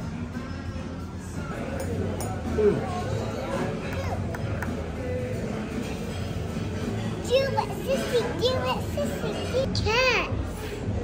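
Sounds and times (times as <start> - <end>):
background music: 0.0 - 11.0
restaurant din: 0.0 - 11.0.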